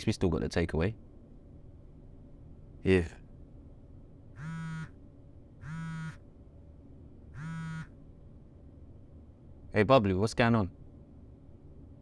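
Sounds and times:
mobile phone buzzing on a desk: 4.4 - 5.0, 5.6 - 6.2, 7.4 - 8.0.

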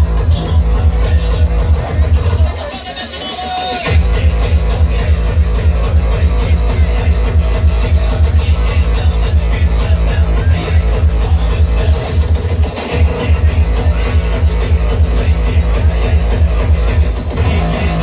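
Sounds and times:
hardcore dance music: 0.0 - 18.0
fast pounding kick drum: 3.9 - 18.0.

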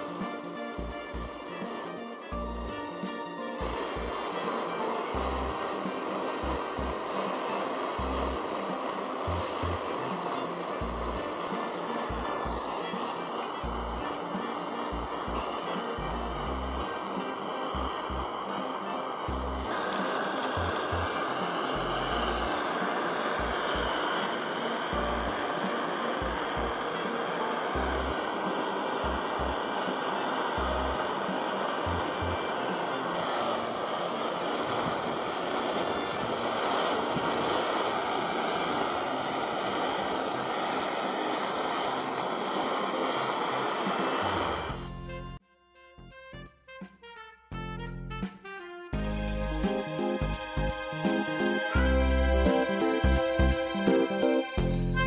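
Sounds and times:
background music: 0.0 - 36.8, 42.7 - 55.0
gas stove burner roaring: 0.0 - 45.4, 49.0 - 55.0.

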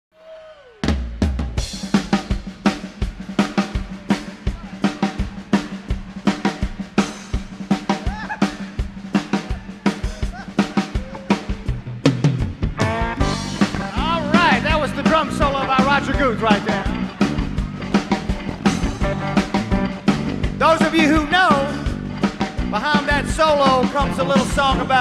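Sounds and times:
rock drum solo: 0.8 - 25.0
pitched sounds: 12.8 - 24.8.

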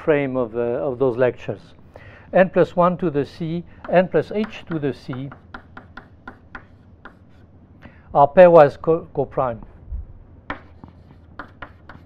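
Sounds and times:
chalk writing on blackboard: 3.8 - 7.5, 10.5 - 12.0.

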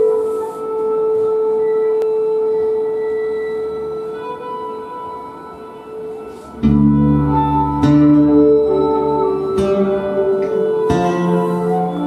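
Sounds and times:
fiddle bowed note: 0.0 - 12.0.

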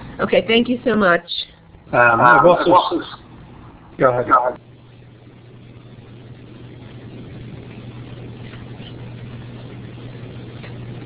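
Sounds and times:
background hiss: 0.0 - 11.0
low electrical hum: 0.0 - 11.0.

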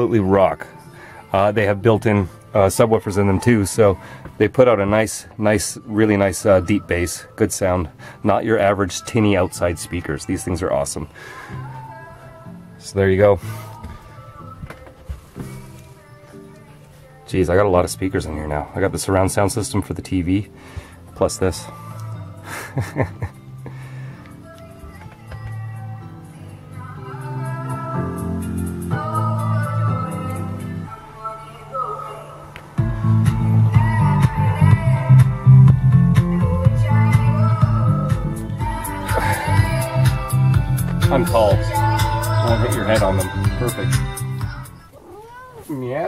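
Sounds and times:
music through speakers: 21.1 - 44.8.

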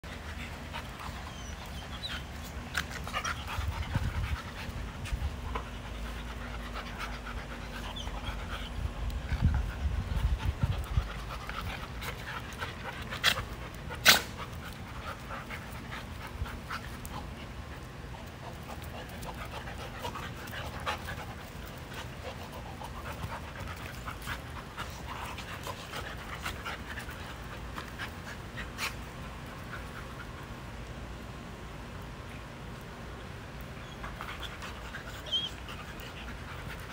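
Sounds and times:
dogs panting: 0.0 - 30.8, 33.6 - 36.9
small scuffs and clicks: 0.1 - 30.9.

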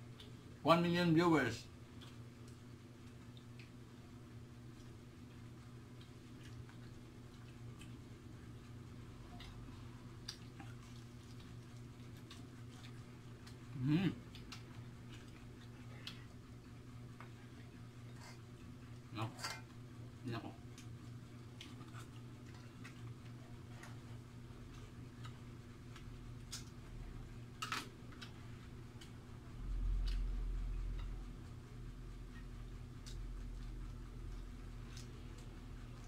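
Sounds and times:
person eating by hand: 0.0 - 0.6, 1.8 - 36.0
steady low hum: 0.0 - 36.0
crispy food clicks and crackles: 4.7 - 17.8, 20.3 - 31.6, 32.3 - 36.0.

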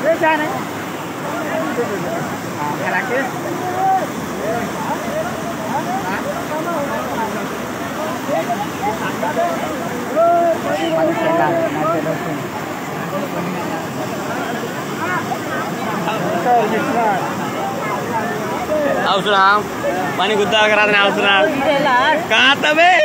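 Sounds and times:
floodwater rushing: 0.0 - 23.0
people calling out: 8.2 - 12.6.

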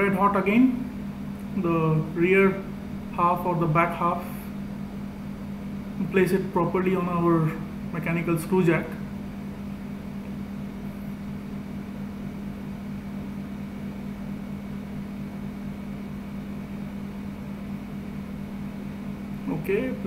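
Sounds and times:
machine hum: 0.0 - 20.0.

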